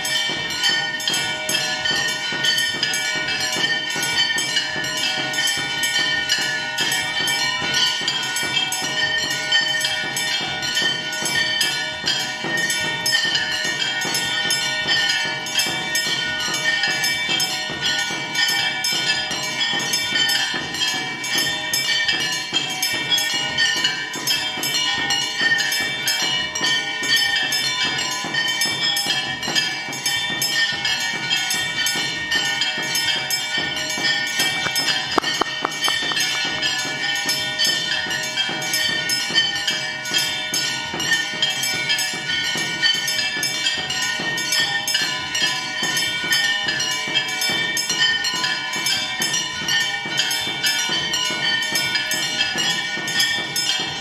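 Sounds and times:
fast percussion beat: 0.0s - 48.0s
bells ringing: 0.0s - 54.0s.

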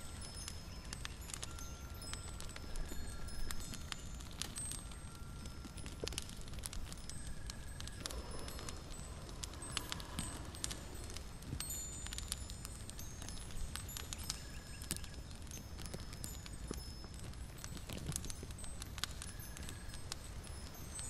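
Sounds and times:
crackling clicks: 0.0s - 21.0s
high thin ringing tones: 6.8s - 14.9s.

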